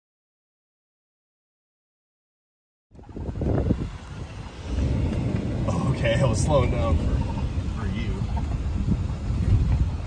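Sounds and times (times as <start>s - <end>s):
truck rumbling on dirt track: 2.9s - 10.0s.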